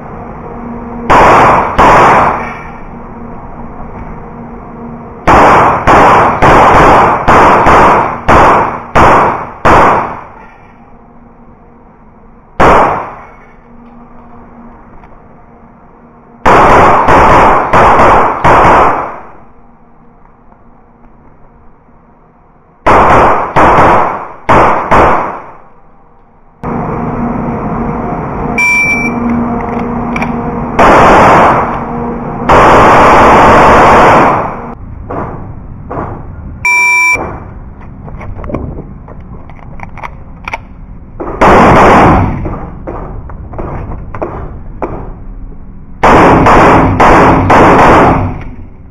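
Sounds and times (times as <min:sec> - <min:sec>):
loud blurred noise: 0:00.0 - 0:48.9
pistol shots: 0:01.1 - 0:02.6, 0:05.3 - 0:10.4, 0:12.6 - 0:13.4, 0:16.5 - 0:19.3, 0:22.9 - 0:25.6, 0:41.4 - 0:42.4, 0:46.0 - 0:48.4.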